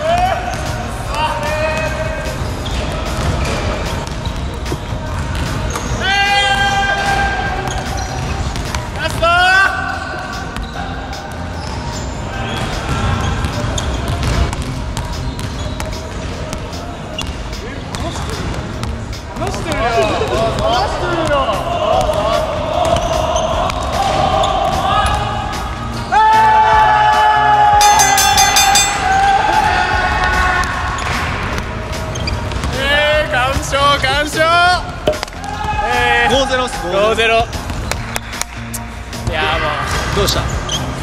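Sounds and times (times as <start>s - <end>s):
sneakers squeaking on wood: 7.6s - 8.8s, 10.4s - 19.0s, 32.0s - 32.8s, 40.4s - 41.0s.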